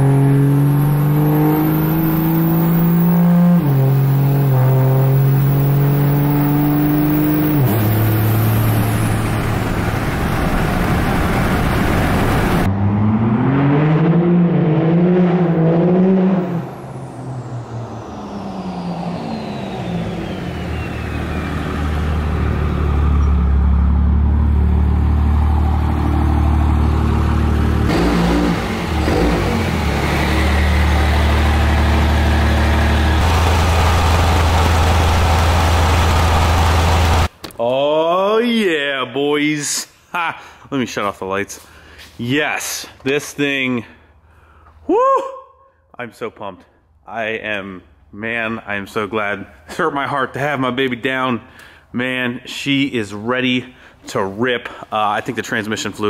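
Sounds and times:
diesel pickup engine revving: 0.0 - 37.3.

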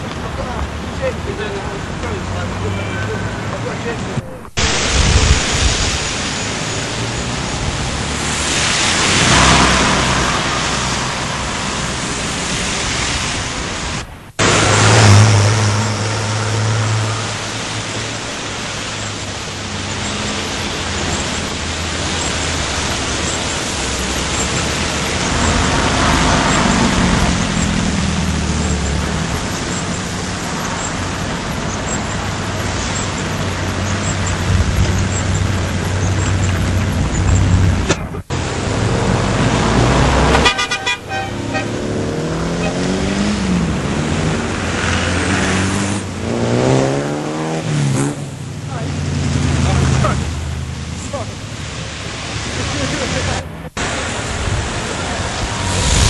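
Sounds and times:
cars and buses passing: 0.0 - 56.0
tyre hiss on wet road: 4.6 - 56.0.

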